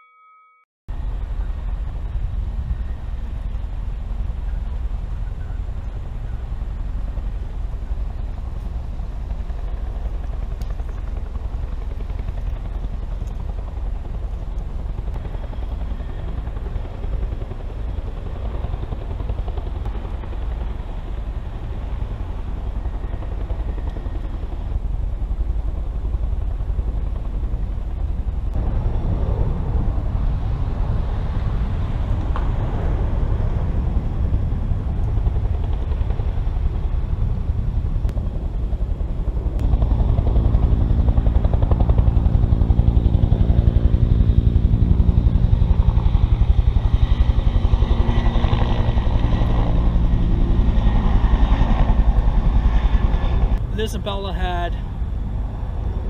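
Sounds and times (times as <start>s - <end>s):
wind rumbling on microphone: 0.9s - 53.9s, 54.8s - 56.0s
engine drone: 0.9s - 56.0s.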